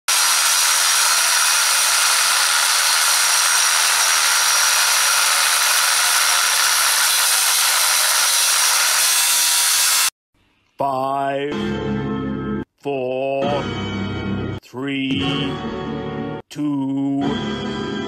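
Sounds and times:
angle grinder cutting steel: 0:00.1 - 0:10.2.

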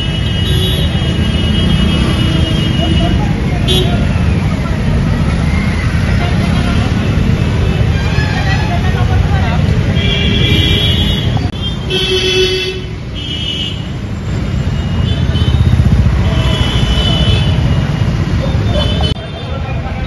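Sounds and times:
roadside traffic passing: 0:00.0 - 0:20.0
people talking: 0:08.2 - 0:10.0, 0:18.4 - 0:20.0
vehicle horn: 0:16.2 - 0:17.6.

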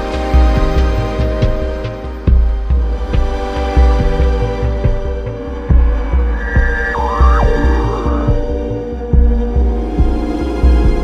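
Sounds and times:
pulsing synth bass line: 0:05.5 - 0:08.8
held synth tones: 0:05.6 - 0:08.8
pitch-bending synth line: 0:05.6 - 0:08.8
ticking drum machine percussion: 0:05.7 - 0:08.6.

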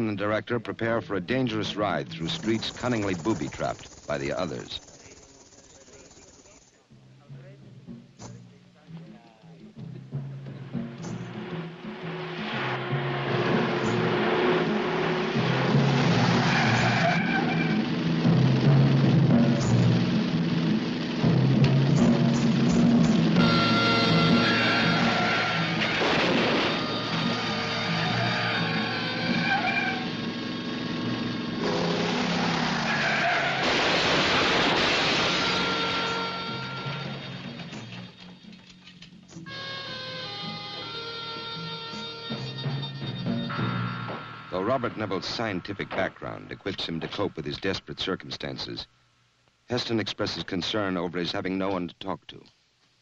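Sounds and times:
distant indistinct voices: 0:01.5 - 0:11.5
car driving fast: 0:11.2 - 0:23.4, 0:24.2 - 0:34.8
tyre squeals: 0:16.0 - 0:17.9, 0:23.4 - 0:26.1, 0:26.7 - 0:30.6, 0:32.4 - 0:33.7
faint steady hiss: 0:44.3 - 0:53.0.

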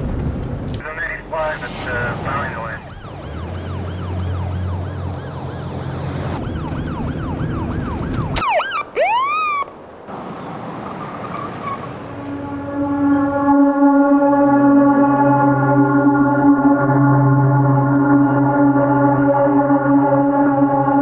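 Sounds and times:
siren wailing: 0:02.4 - 0:09.8, 0:10.9 - 0:21.0.

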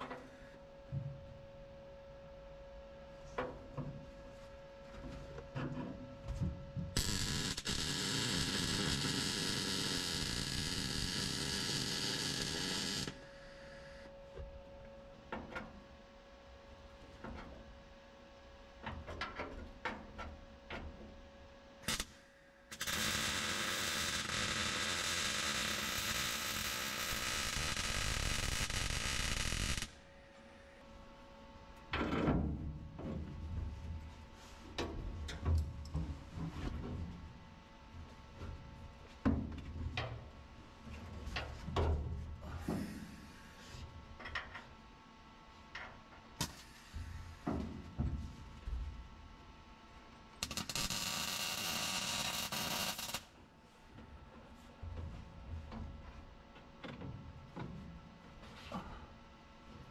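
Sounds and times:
welder welding: 0:07.0 - 0:13.2, 0:21.8 - 0:30.0, 0:46.4 - 0:46.9, 0:50.4 - 0:53.4.

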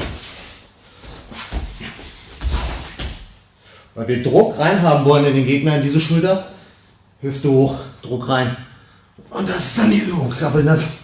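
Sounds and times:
body thumping on mat: 0:01.1 - 0:03.4.

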